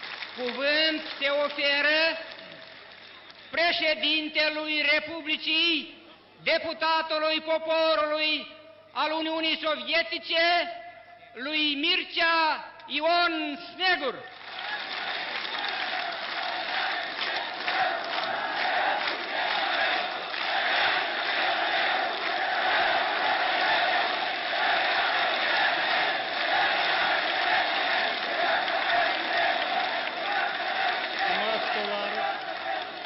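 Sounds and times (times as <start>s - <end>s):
applause: 0.0s - 4.1s, 14.0s - 33.0s
crowd shouting and chanting: 14.6s - 33.0s.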